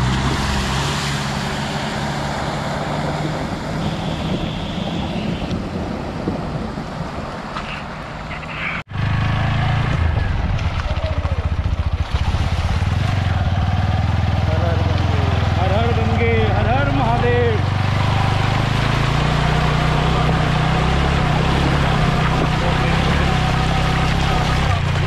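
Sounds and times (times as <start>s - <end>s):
motorcycle engine at low revs: 8.9s - 25.0s
water splashing: 11.5s - 15.6s, 17.7s - 25.0s.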